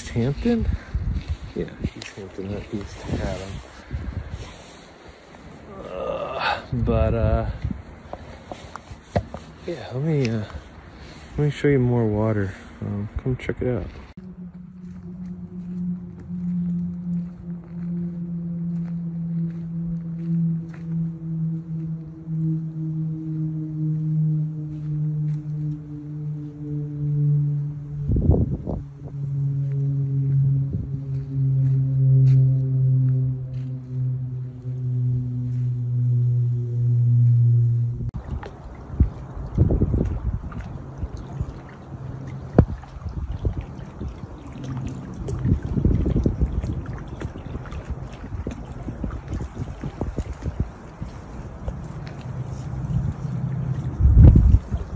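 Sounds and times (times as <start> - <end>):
wind buffeting microphone: 0.0 - 5.7, 6.6 - 14.2, 15.6 - 54.9
low hum falling in pitch: 0.0 - 54.9.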